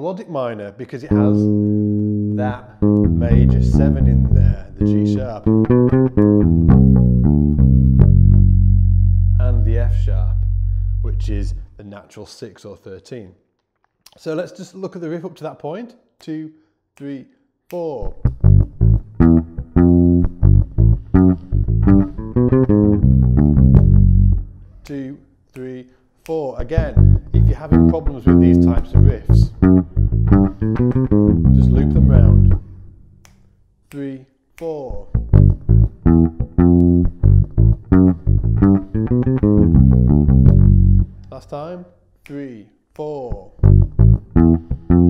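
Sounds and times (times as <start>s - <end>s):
electric bass guitar riff: 1.1s - 11.7s, 18.1s - 24.6s, 26.7s - 32.8s, 35.0s - 41.3s, 43.4s - 45.0s.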